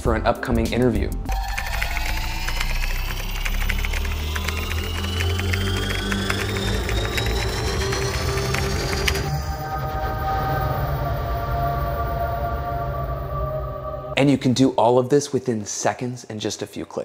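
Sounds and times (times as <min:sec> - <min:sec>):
background music with low drone: 0:00.0 - 0:14.5
fast typing on keyboard: 0:01.3 - 0:09.3
rising synth riser: 0:01.3 - 0:14.4.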